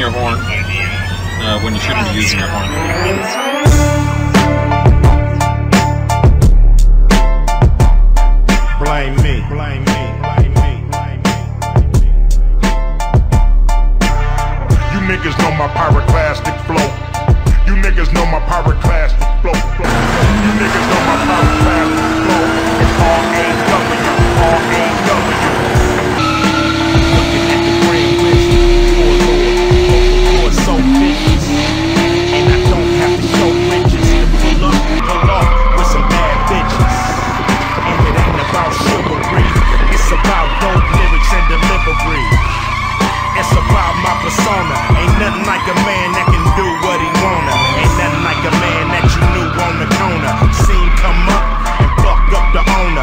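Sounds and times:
car engine revving: 0.0s - 53.0s
hip hop music with heavy bass: 0.0s - 53.0s
tyres squealing: 19.8s - 53.0s.

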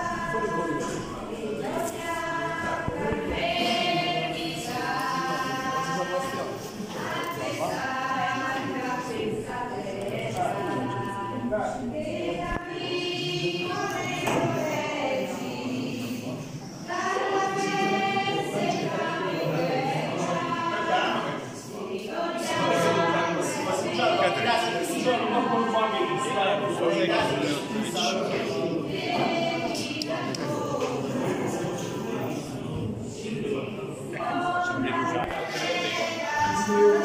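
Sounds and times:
group singing a hymn: 0.0s - 37.0s.

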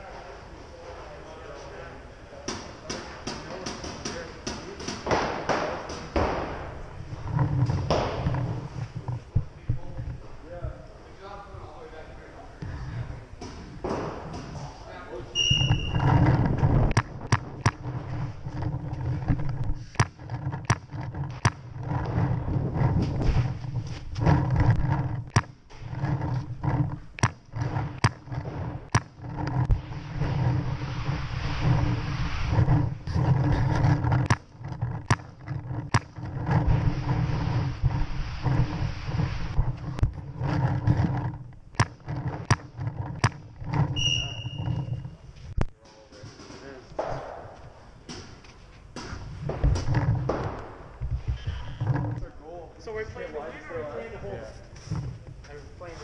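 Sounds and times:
balls smacking inflatable bunkers: 2.5s - 9.4s, 13.4s - 14.8s, 15.6s - 29.9s, 32.9s - 38.9s, 39.6s - 44.4s, 46.9s - 51.3s.

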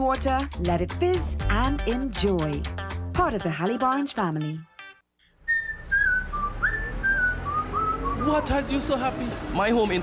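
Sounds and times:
whistled jingle tune: 5.4s - 8.6s.

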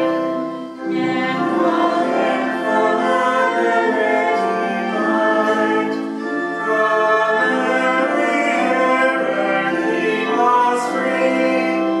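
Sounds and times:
voices singing a hymn: 0.0s - 12.0s.

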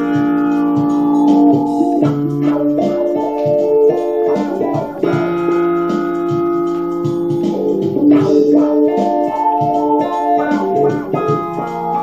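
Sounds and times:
electric guitar chord ringing: 0.0s - 12.0s
lower guitar notes: 0.0s - 12.0s.

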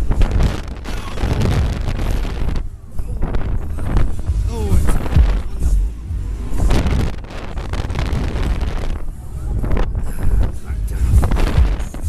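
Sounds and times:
fairground music: 0.0s - 12.0s
wind buffeting microphone: 0.0s - 12.0s.

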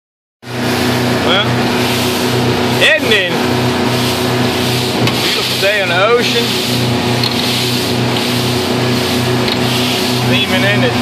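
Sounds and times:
powerboat engine running: 0.4s - 11.0s
wind and water rush: 0.6s - 11.0s
person's voice: 2.8s - 3.4s, 5.2s - 6.6s, 10.2s - 11.0s.

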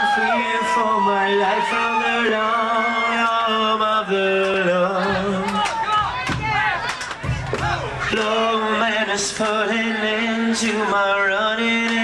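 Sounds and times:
crowd noise: 0.0s - 12.0s
drum and cymbal hits: 5.1s - 8.2s.

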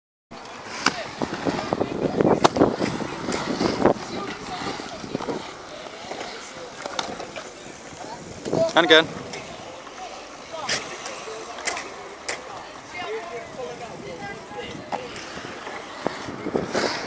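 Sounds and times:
skate wheels rolling on concrete: 0.3s - 17.0s
sharp skate clicks and knocks: 0.4s - 8.7s, 9.3s - 12.7s.

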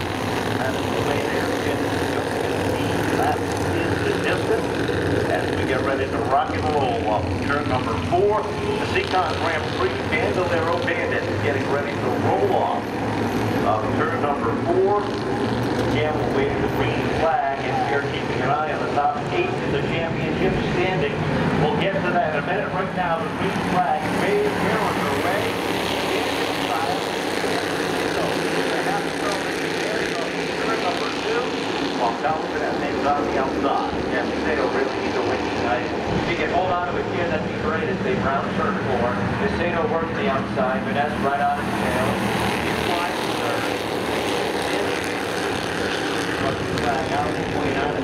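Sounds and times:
race car engines droning: 0.0s - 48.0s.

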